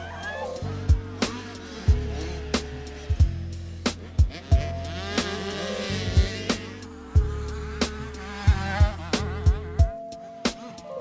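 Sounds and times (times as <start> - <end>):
motorbike engine revving: 0.0 - 10.0
backing music with steady beat: 0.0 - 10.9.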